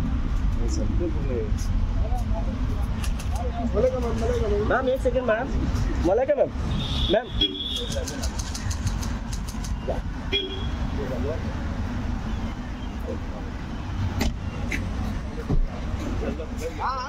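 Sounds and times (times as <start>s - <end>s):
traffic rumble: 0.0s - 17.0s
sharp clicks: 7.8s - 9.8s.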